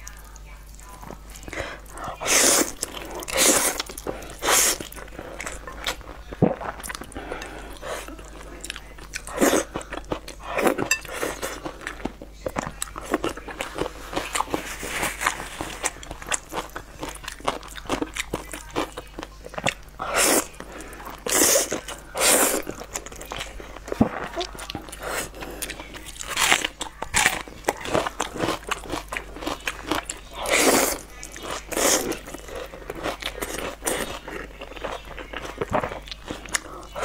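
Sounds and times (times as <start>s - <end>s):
chewing mouth sounds: 0.0s - 37.0s.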